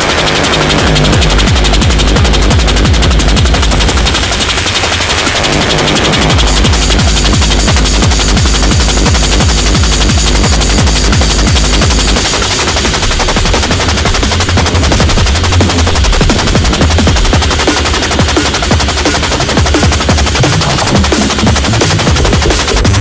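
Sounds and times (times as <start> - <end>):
electronic dance music: 0.0 - 23.0
rapid drum hits: 0.0 - 23.0.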